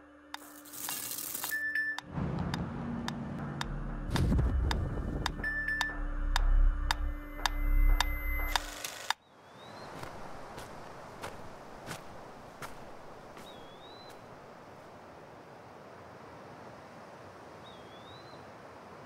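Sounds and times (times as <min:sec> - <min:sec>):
pendulum metronome ticking: 0:05.2 - 0:08.6.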